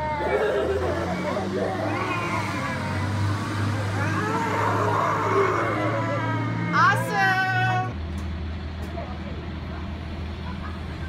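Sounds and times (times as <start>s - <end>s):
bus engine humming: 0.0s - 11.0s
city street noise: 0.0s - 11.0s.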